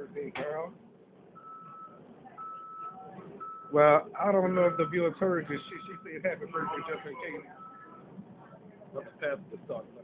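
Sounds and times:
vehicle warning beeper: 0:01.4 - 0:08.1.

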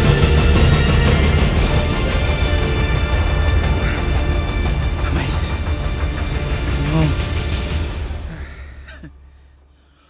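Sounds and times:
film score swell: 0:00.0 - 0:08.8.

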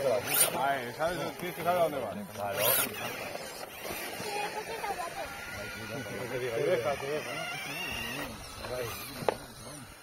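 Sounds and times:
electric motor whine: 0:00.0 - 0:10.0
people talking: 0:04.0 - 0:10.0.

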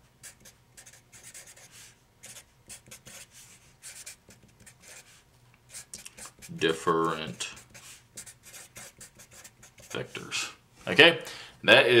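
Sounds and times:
marker writing on paper: 0:00.2 - 0:10.2.

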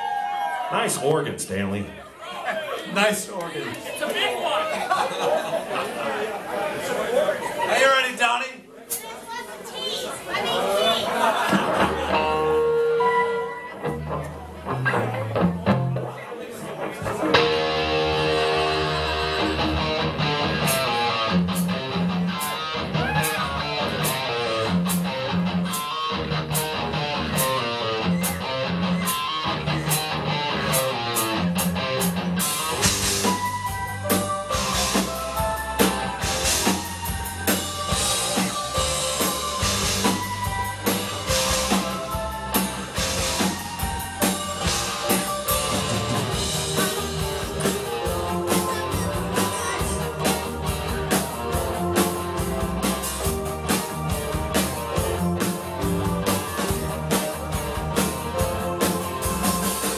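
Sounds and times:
live rock band playing: 0:10.4 - 0:59.9
steady drum beat: 0:17.0 - 0:59.9.

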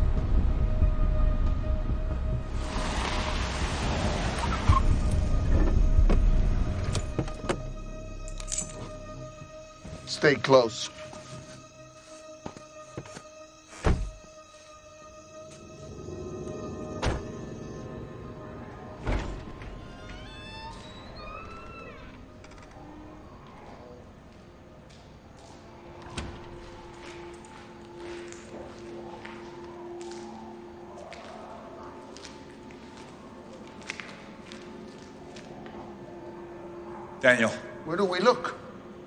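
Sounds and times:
low rumble: 0:00.0 - 0:08.4.

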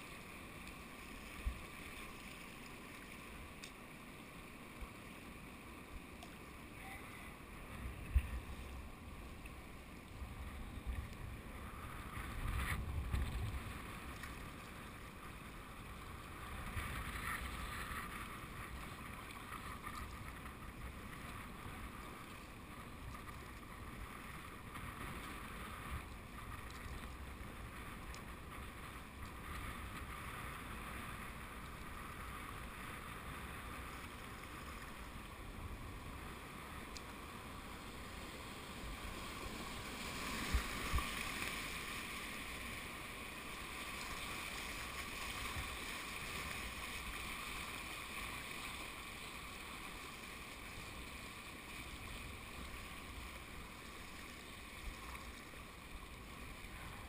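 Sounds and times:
wind rumbling on microphone: 0:06.8 - 0:48.9
river water rushing: 0:37.2 - 0:57.0.

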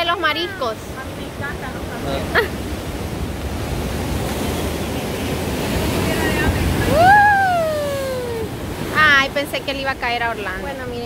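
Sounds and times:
waves breaking against rocks: 0:00.0 - 0:11.0
person exclaiming: 0:06.9 - 0:08.5.

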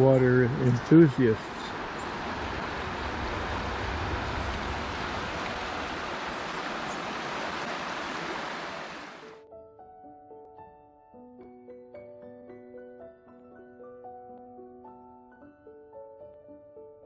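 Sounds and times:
water rushing over rocks: 0:00.6 - 0:09.4
soft piano music: 0:09.3 - 0:17.0.

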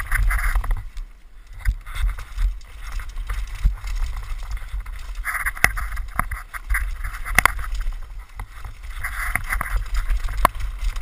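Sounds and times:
bike clattering on rocks: 0:00.0 - 0:11.0
bike tyres rattling over dirt: 0:00.0 - 0:11.0.

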